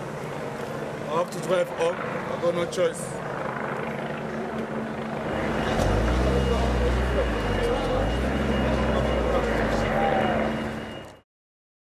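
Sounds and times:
vehicle engine rumble: 0:03.2 - 0:11.2
thin high tone: 0:05.2 - 0:11.2.

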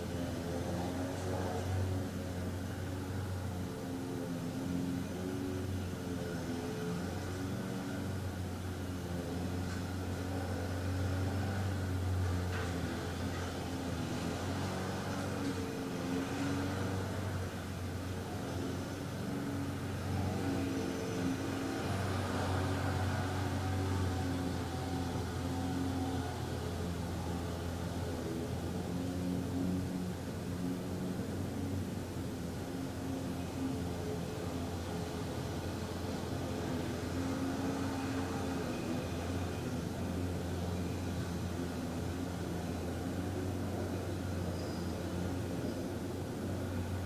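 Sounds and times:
low mechanical engine hum: 0:00.0 - 0:47.0.

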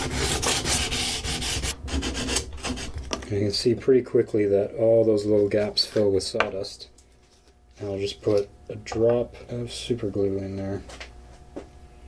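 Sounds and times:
hand sanding wood: 0:00.0 - 0:03.0.

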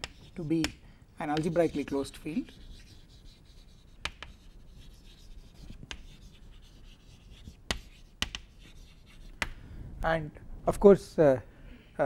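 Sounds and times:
chalk scratching on chalkboard: 0:00.0 - 0:09.5
chalk tapping on board: 0:00.0 - 0:09.6.

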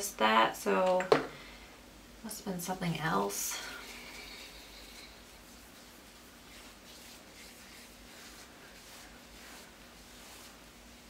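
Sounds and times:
low room hum: 0:00.0 - 0:11.0
fingertips rubbing skin: 0:03.8 - 0:10.6.

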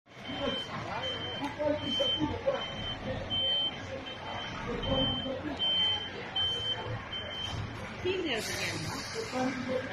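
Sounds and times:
truck reversing alarm beeping: 0:00.1 - 0:08.3.

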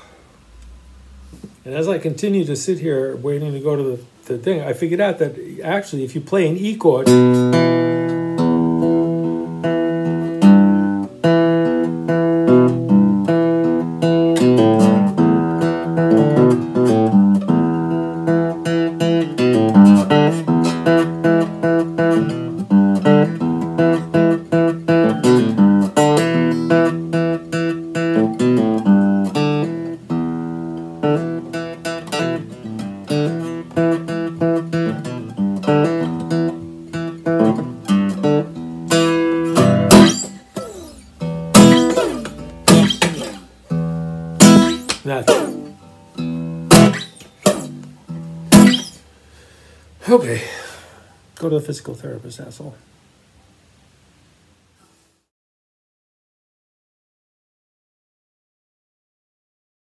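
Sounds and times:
acoustic guitar playing blues: 0:00.4 - 0:50.6.

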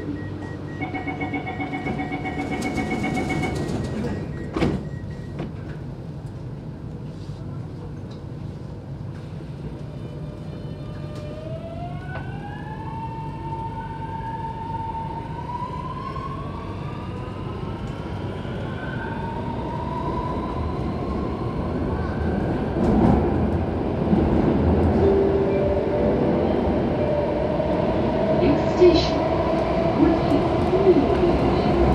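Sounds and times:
metro traction motors whining: 0:00.0 - 0:04.7
wheels rumbling on rail: 0:00.0 - 0:12.5, 0:15.0 - 0:31.9.

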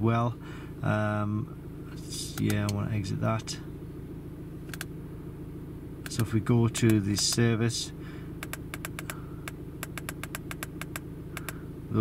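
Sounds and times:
car engine idling: 0:00.0 - 0:12.0
buttons clicking: 0:08.4 - 0:09.2, 0:09.8 - 0:11.6.

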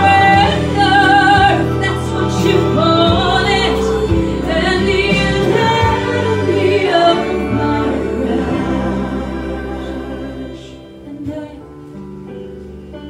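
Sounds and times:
woman singing into a microphone: 0:00.0 - 0:12.1
instrumental accompaniment: 0:00.0 - 0:13.0.

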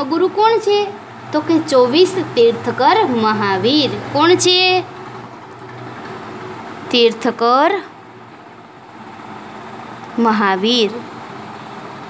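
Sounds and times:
person speaking: 0:00.0 - 0:05.0, 0:06.9 - 0:08.0, 0:10.1 - 0:11.2.

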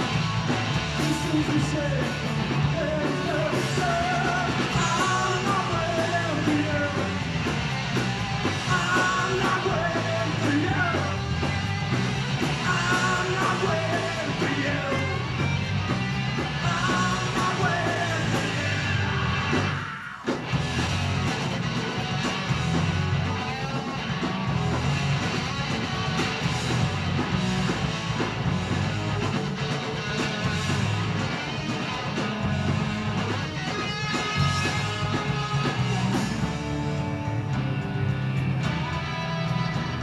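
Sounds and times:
bass guitar: 0:00.0 - 0:40.0
drums: 0:00.0 - 0:40.0
electric guitars: 0:00.0 - 0:40.0.

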